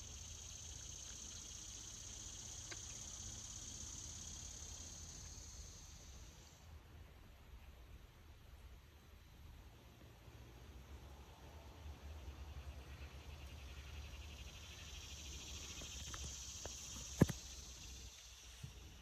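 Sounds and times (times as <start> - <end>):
high-pitched insect trill: 0.0 - 6.6, 13.4 - 19.0.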